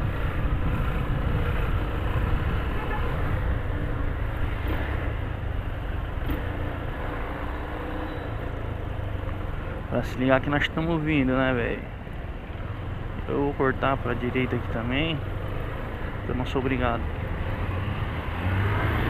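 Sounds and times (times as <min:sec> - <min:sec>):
traffic noise: 0:00.0 - 0:19.0.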